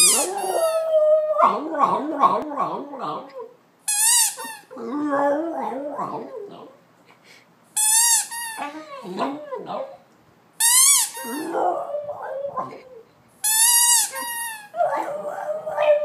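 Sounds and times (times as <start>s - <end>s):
squeaky dog toy: 0.0s - 0.5s, 3.9s - 4.7s, 7.8s - 8.8s, 10.6s - 11.5s, 13.4s - 14.8s
dog howling: 0.0s - 3.5s, 4.7s - 6.7s, 11.2s - 13.0s, 14.8s - 16.0s.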